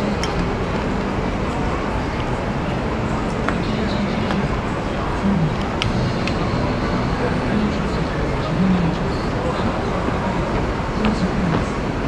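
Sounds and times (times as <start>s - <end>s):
dense outdoor background noise: 0.0s - 12.0s
faint voices: 0.0s - 12.0s.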